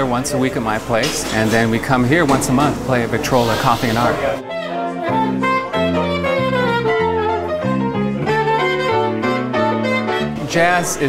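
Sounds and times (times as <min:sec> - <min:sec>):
jazz group playing: 0:00.0 - 0:11.0
electric guitar: 0:04.4 - 0:10.5.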